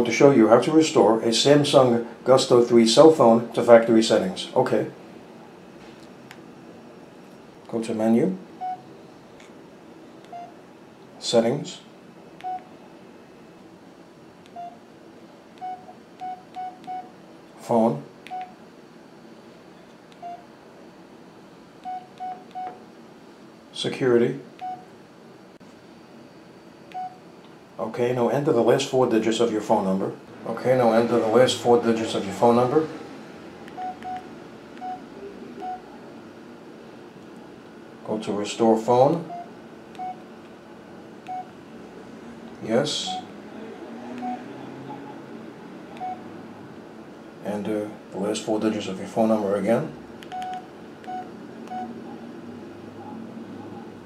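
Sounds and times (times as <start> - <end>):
phone keypad beeps: 15.6 - 17.1, 21.8 - 22.8, 33.7 - 35.0, 44.2 - 45.2, 46.0 - 46.2, 50.3 - 51.9
phone key beeps with clicks: 50.2 - 51.9.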